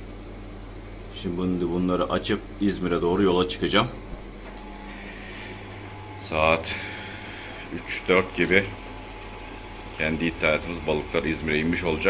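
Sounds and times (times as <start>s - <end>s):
aquarium pumps and filters humming: 0.0s - 12.0s.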